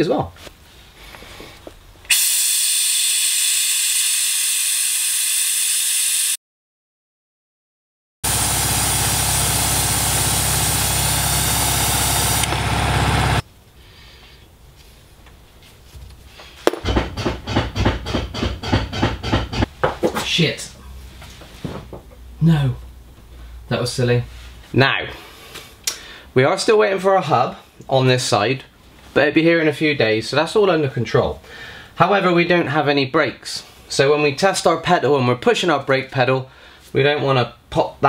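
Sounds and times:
vacuum brake bleeder hissing: 0:02.1 - 0:06.4, 0:08.3 - 0:13.4.

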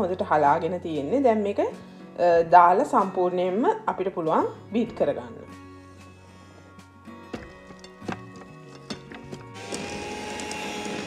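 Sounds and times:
background music: 0:00.0 - 0:11.0
electric hand mixer whining: 0:09.6 - 0:11.0.

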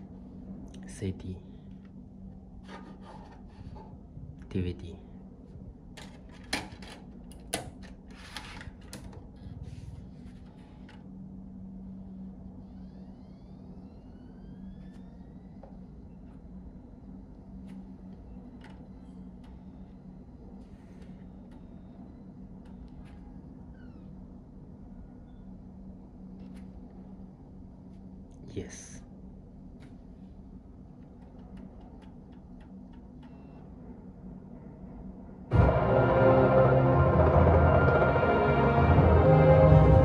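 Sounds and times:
disc drive spinning with whine: 0:08.4 - 0:27.2.

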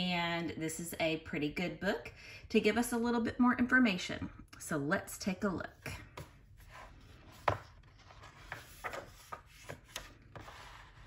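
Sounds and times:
book pages rustling: 0:06.1 - 0:11.0.

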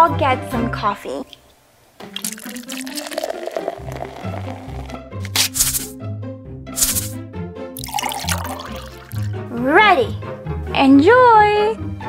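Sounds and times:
bouncy background music: 0:00.0 - 0:12.0
hissing pour from airpot: 0:02.0 - 0:05.9, 0:07.8 - 0:09.4.

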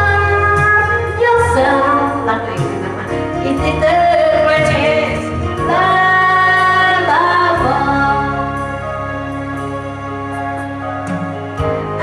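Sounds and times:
woman singing with vibrato: 0:00.0 - 0:08.8
karaoke backing track: 0:00.0 - 0:12.0.

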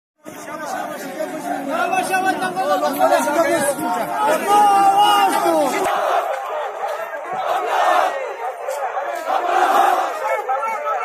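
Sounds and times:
crowd chanting and calling out: 0:00.2 - 0:11.0.

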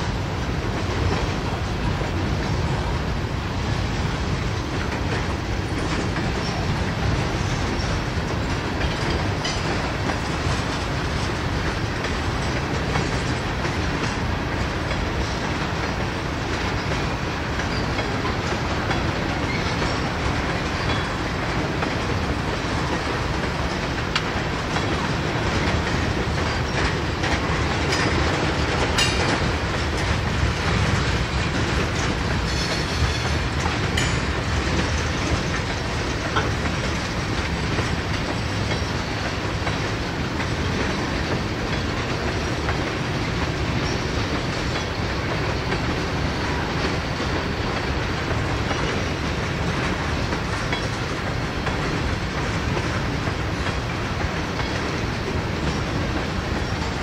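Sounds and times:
steel wheels rumbling on rail: 0:00.0 - 0:57.0
wheels clacking over rail joints: 0:00.0 - 0:57.0.

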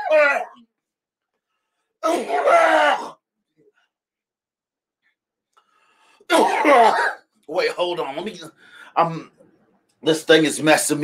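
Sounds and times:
man coughing groan: 0:02.0 - 0:03.2, 0:06.3 - 0:07.2.

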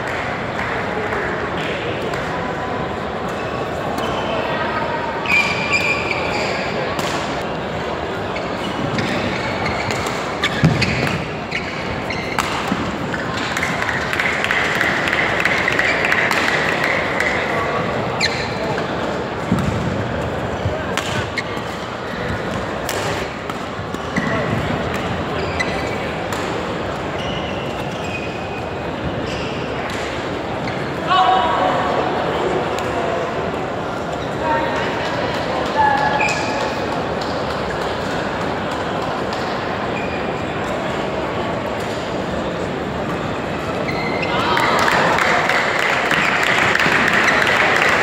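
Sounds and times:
echoing chatter: 0:00.0 - 0:48.0
racket hitting shuttlecock: 0:09.8 - 0:11.4, 0:12.1 - 0:17.3, 0:20.9 - 0:24.3.

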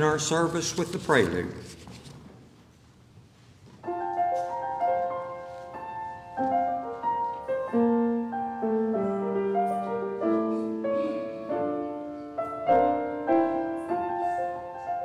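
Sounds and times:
slow piano prelude: 0:03.7 - 0:15.0.

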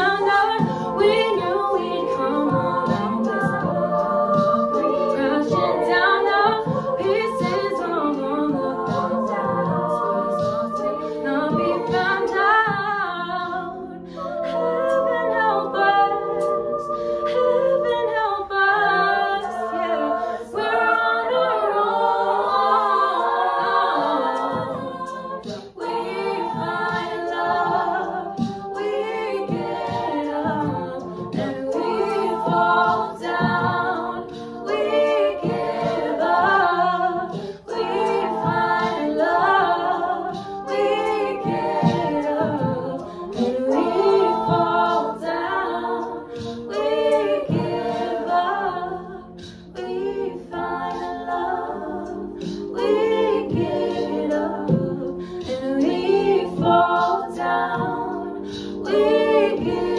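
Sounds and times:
choir holding chords: 0:00.0 - 0:59.9.

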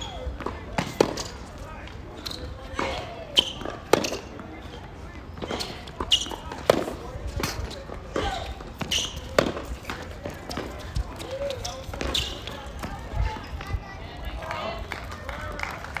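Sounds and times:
tennis ball struck by rackets: 0:00.4 - 0:01.4, 0:02.8 - 0:04.5, 0:05.4 - 0:10.8
tennis ball bouncing on court: 0:02.2 - 0:04.5, 0:05.4 - 0:11.0.

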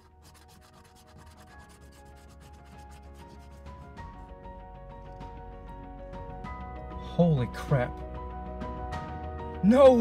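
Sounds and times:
scratching lottery ticket: 0:00.0 - 0:04.1
background music: 0:00.0 - 0:10.0.

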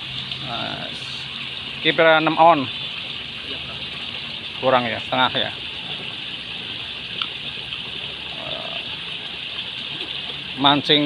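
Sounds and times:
water pouring into river: 0:00.0 - 0:11.0.

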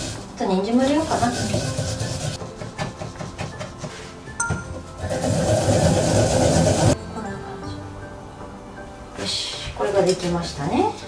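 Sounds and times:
ginger grated on metal grater: 0:00.0 - 0:03.6, 0:05.0 - 0:07.0.

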